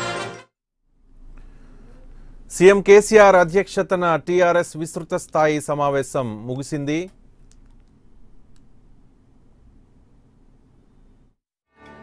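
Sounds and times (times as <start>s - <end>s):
faint low background noise: 0.9s - 11.4s
background music held notes: 11.7s - 12.0s.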